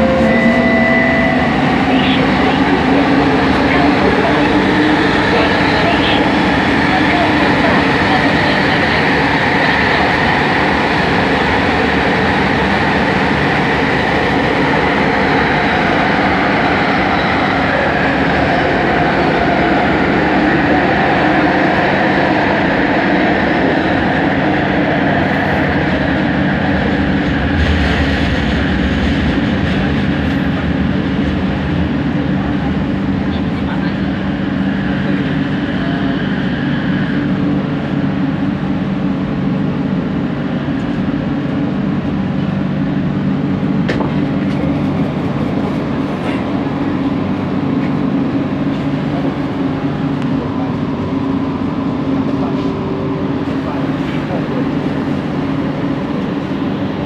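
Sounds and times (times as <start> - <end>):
high train whine: 0.0 - 57.0
metro train rumble in tunnel: 0.0 - 57.0.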